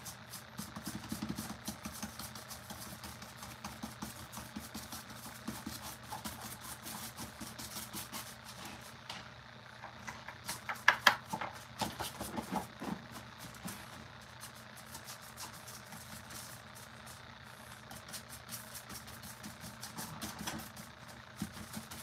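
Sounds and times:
steady low hum: 0.0 - 22.0
clicks and taps of brushes and bottles: 0.6 - 8.3, 9.0 - 16.5, 17.9 - 22.0.

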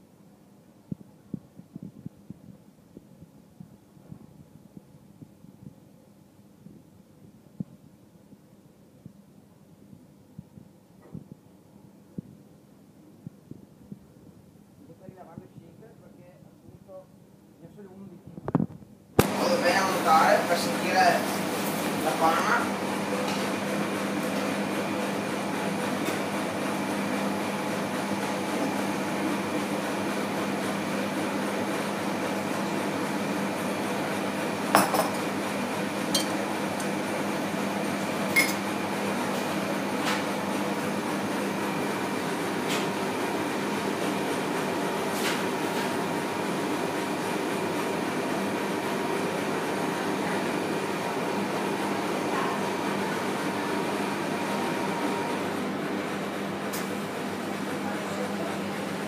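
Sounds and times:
dishes and glassware clinking: 36.2 - 36.4, 38.4 - 38.6.

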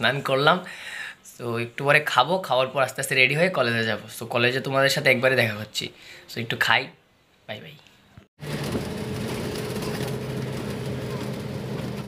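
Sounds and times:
bus engine hum: 8.4 - 12.0.

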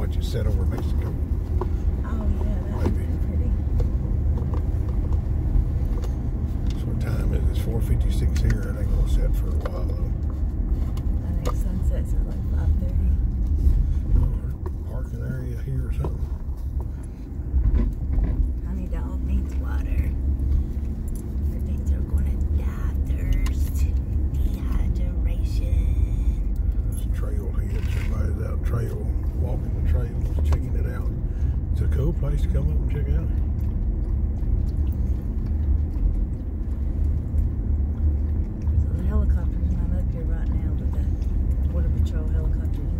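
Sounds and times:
car tyres and engine rumble: 0.0 - 42.9.

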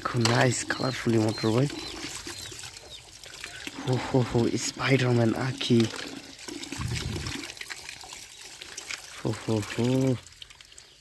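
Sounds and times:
water pouring and splashing: 0.0 - 11.0.

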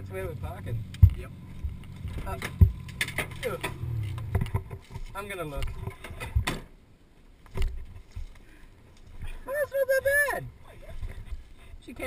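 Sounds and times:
low rumble: 0.0 - 6.5
sharp thumps: 0.6 - 6.7
person calling out: 9.4 - 10.5.

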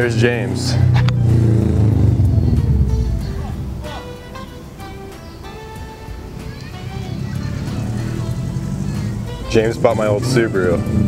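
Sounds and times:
background music: 0.0 - 11.0
car engine rumbling by: 0.0 - 11.0.

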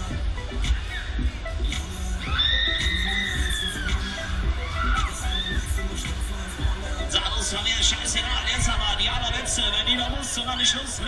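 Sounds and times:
fairground music with pounding bass: 0.0 - 11.0
riders screaming: 2.3 - 5.6.

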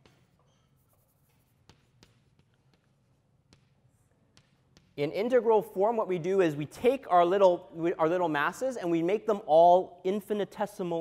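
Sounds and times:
chalk writing on blackboard: 0.0 - 5.0
chalk taps: 0.0 - 5.3.

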